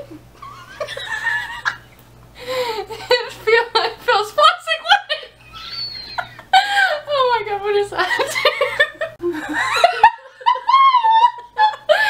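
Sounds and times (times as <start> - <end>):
women laughing hard: 0.4 - 3.8, 5.0 - 7.1, 8.1 - 12.0.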